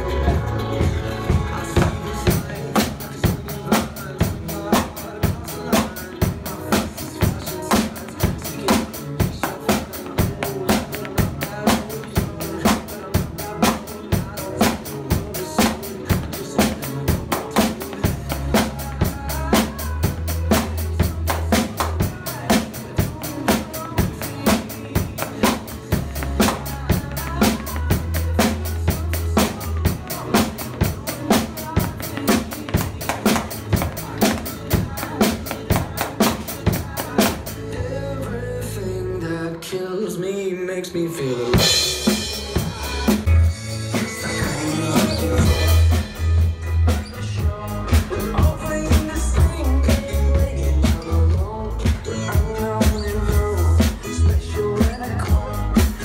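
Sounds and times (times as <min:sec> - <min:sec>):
drum kit rock beat: 0:00.0 - 0:38.3, 0:41.2 - 0:56.0
pop song backing track: 0:00.0 - 0:56.0.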